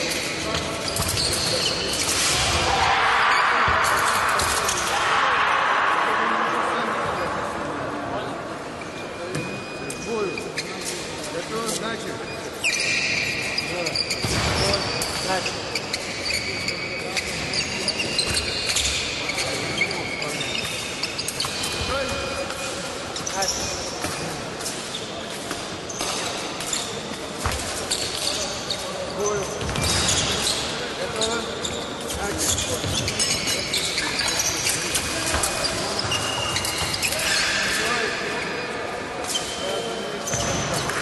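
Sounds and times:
shoes squeaking on floor: 0.0s - 2.3s, 8.8s - 41.0s
voices in reverberant hall: 0.0s - 41.0s.

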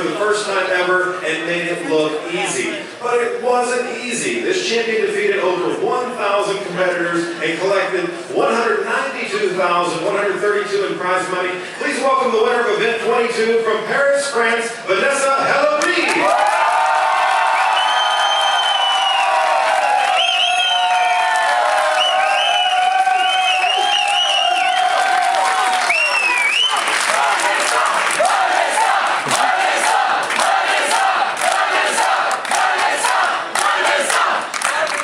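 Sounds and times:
crowd clapping: 15.8s - 35.0s
crowd cheering and shouting: 15.9s - 35.0s.

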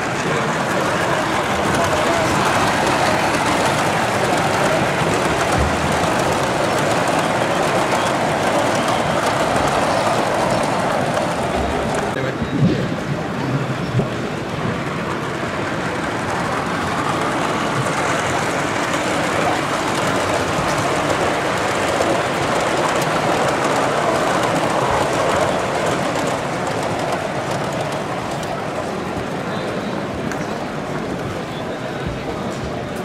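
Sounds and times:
model train wheels rumbling on rails: 0.0s - 33.0s.

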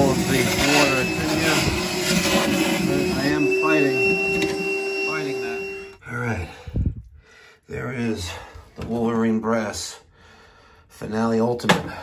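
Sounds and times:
wet dry vacuum whining: 0.0s - 6.0s.

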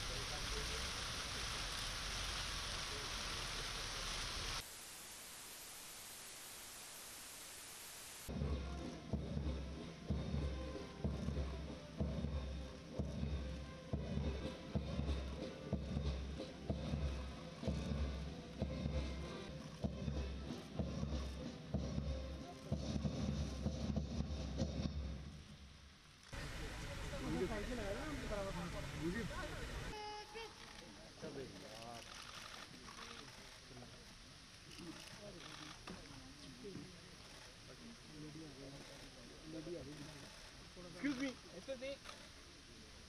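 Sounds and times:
hiss: 0.0s - 8.4s
heavy drum beat: 8.3s - 25.3s
military band music: 8.3s - 25.3s.

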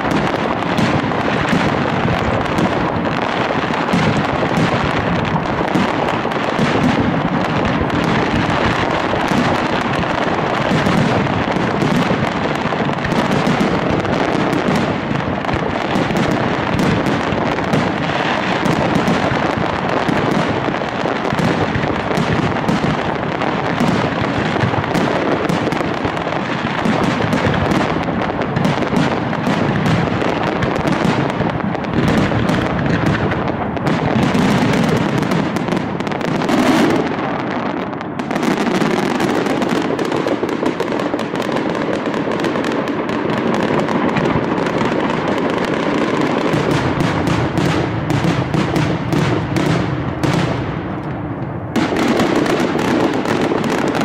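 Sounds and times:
firecrackers bursting overhead: 0.0s - 54.0s.

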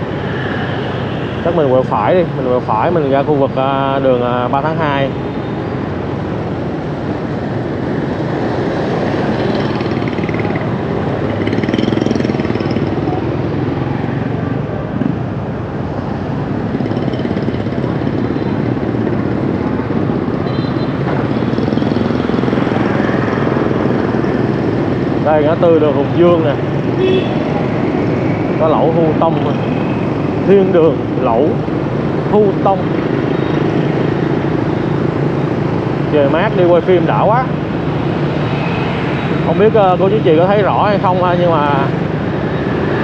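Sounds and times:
motorbike engines: 0.0s - 43.0s
road noise: 0.0s - 43.0s.

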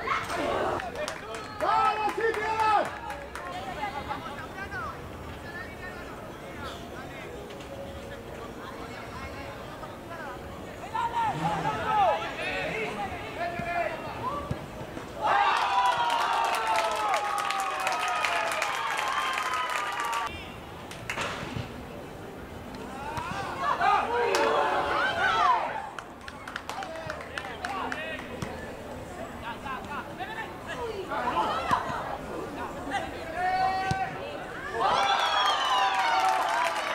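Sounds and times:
crowd cheering: 0.0s - 3.9s, 15.2s - 20.3s, 23.0s - 28.4s, 33.6s - 36.9s.

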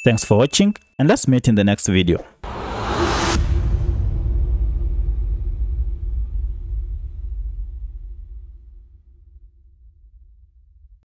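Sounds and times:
deep low rumbling drone: 2.4s - 11.0s.

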